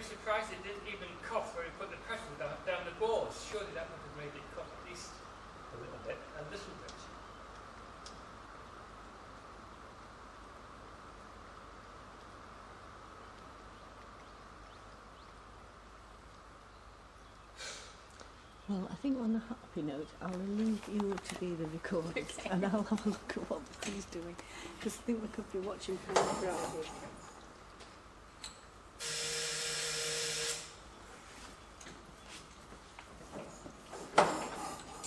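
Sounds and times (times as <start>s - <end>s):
steady hiss and low hum: 0.0s - 35.0s.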